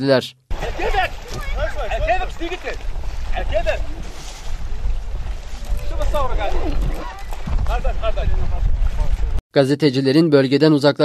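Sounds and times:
wind on microphone: 0.5 - 9.4.

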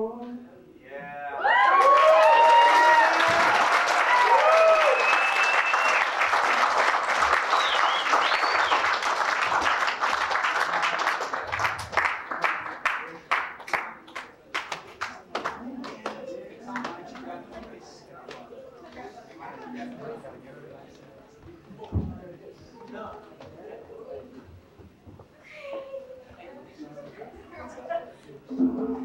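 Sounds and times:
crowd whooping and yelling: 1.1 - 6.2
audience applause: 1.4 - 17.3
held whistle: 4.9 - 6.1, 7.5 - 8.8.

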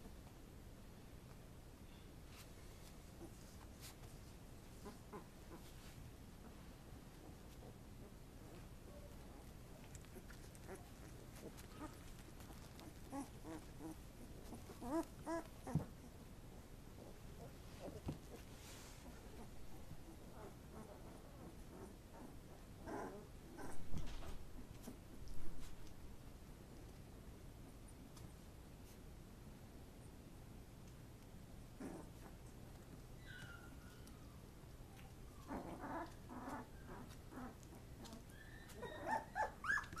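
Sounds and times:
puppies whimpering: 33.2 - 34.4, 35.2 - 40.0.

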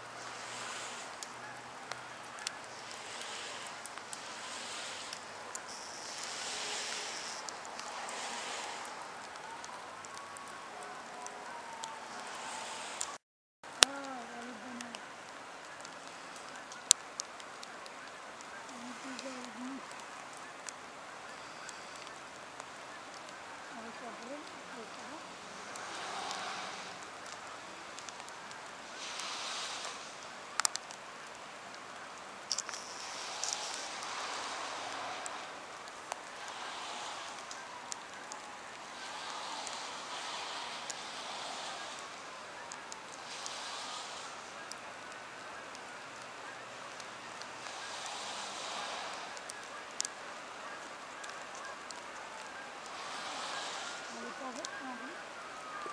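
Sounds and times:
distant bird calls: 0.0 - 13.2, 13.8 - 55.9
water rushing: 0.0 - 55.9
wind: 0.0 - 55.9
light ticks: 13.8 - 50.2
sharp clicks: 32.4 - 50.2.

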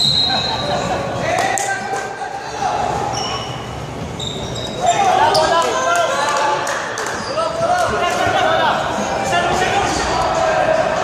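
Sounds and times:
sneakers squeaking on court: 3.1 - 5.8.

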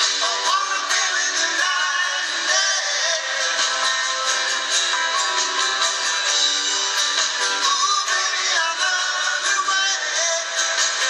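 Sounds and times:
live band playing soft rock ballad: 0.0 - 11.0.

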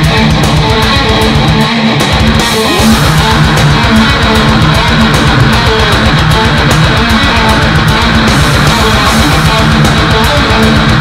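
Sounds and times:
distorted electric guitar riff: 0.0 - 11.0
fast steady drum hits: 0.0 - 11.0.

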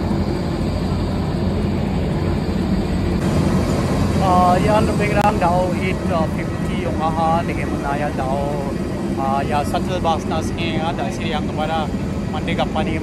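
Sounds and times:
low rumble of aircraft: 0.0 - 13.0
man talking: 4.2 - 13.0.

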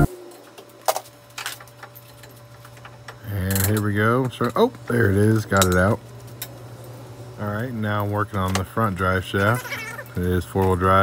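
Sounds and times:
steady low hum: 0.0 - 11.0
man speaking: 7.4 - 11.0.

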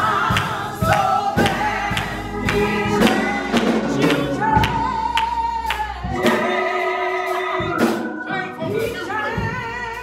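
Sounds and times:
steady beat: 0.0 - 9.7
gospel singing: 0.0 - 10.0.

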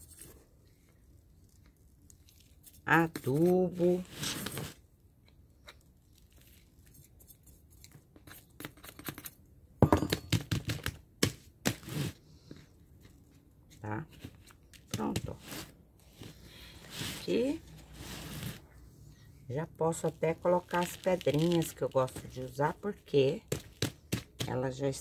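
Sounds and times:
fingers rustling soil: 11.7 - 18.8
metal spoon scooping soil: 15.3 - 18.7.

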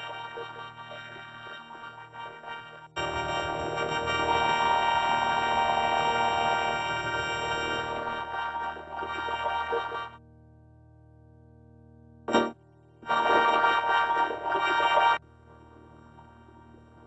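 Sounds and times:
dense chord of steady tones: 2.9 - 10.2.

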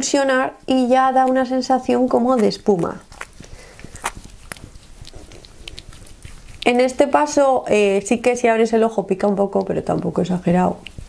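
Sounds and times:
wet hands patting face: 2.2 - 6.7.

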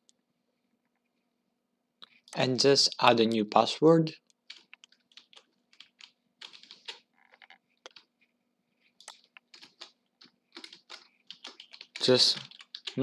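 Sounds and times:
keyboard keystrokes: 4.5 - 8.1, 9.0 - 13.0.

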